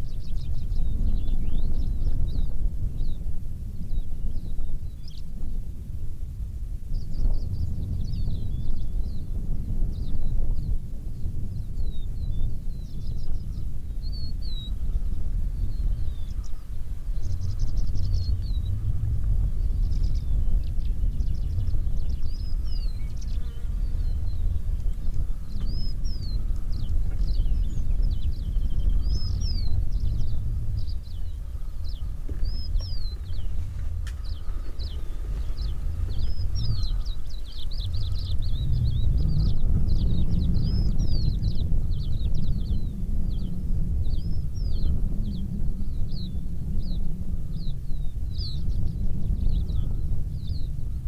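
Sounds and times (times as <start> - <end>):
wind rumble on microphone: 0.0 - 51.0
birds chirping and whistling: 0.1 - 3.2, 11.7 - 47.0, 47.6 - 50.7
insects buzzing: 22.6 - 27.8.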